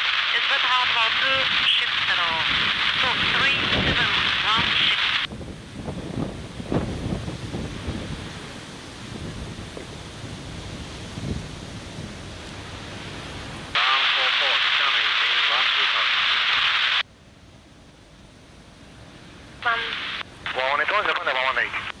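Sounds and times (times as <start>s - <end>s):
wind noise: 0.0s - 13.8s
low outdoor rumble: 0.0s - 22.0s
tinny radio voice: 0.4s - 5.3s, 13.8s - 17.0s, 19.6s - 22.0s.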